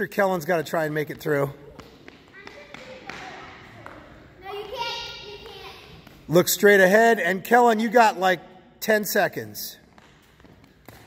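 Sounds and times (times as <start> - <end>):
sneaker footsteps on gym floor: 0.9 - 6.4, 9.7 - 11.0.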